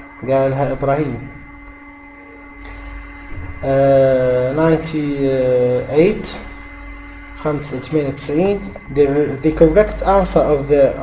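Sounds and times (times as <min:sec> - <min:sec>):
faint steady hum: 0:00.0 - 0:11.0
man speaking: 0:00.2 - 0:01.4, 0:03.6 - 0:06.4, 0:07.4 - 0:11.0.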